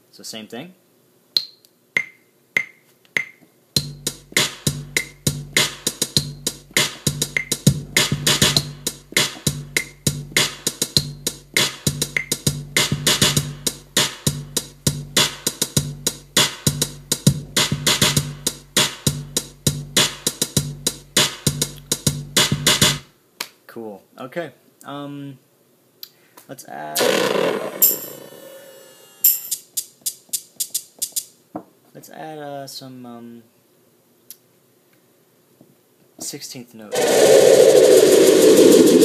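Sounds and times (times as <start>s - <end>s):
metronome clicks: 1.4s - 3.4s, 29.4s - 31.3s
looping electronic drum beat: 2.0s - 23.0s, 36.9s - 39.0s
snare hits: 4.4s - 6.0s, 6.8s - 10.7s.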